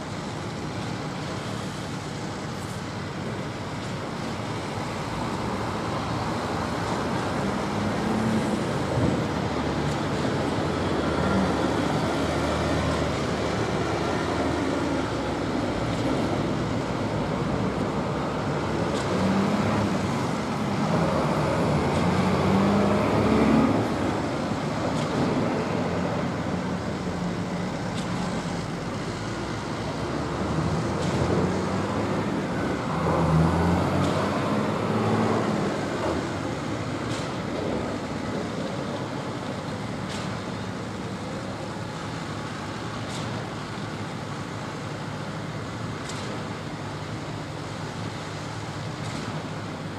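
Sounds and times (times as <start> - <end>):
diesel engines droning: 0.0 - 49.9.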